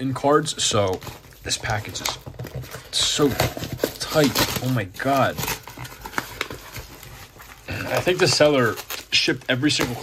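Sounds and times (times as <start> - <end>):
envelope and cardboard rustling: 0.2 - 10.0.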